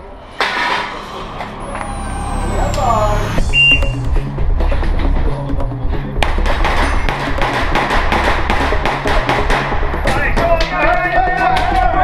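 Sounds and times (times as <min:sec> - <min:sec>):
shot timer beep: 0:03.2 - 0:04.1
background music with beat: 0:03.4 - 0:12.0.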